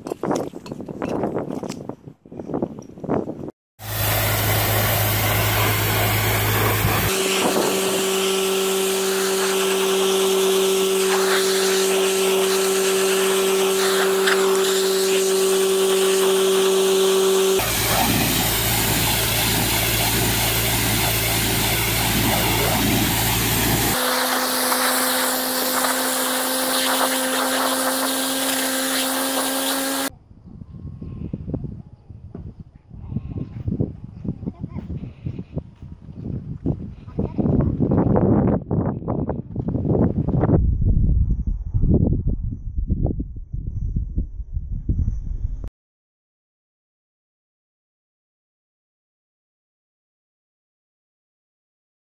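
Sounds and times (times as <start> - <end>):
high-pressure water spray hiss: 3.8 - 30.1
pressure washer pump hum: 3.8 - 30.1.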